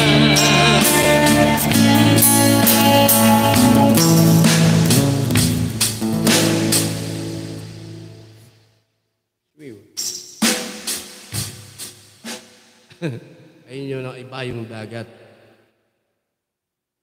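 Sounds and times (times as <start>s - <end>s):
acoustic guitar strumming: 0.0s - 8.5s.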